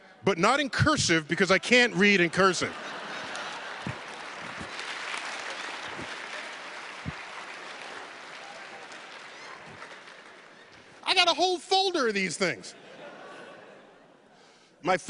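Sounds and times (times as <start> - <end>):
large audience applauding: 2.0 - 11.2.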